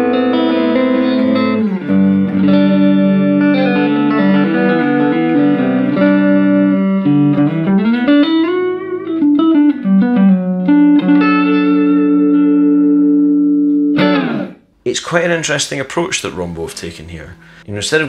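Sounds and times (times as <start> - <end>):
electric guitar lead line: 0.0 - 14.7.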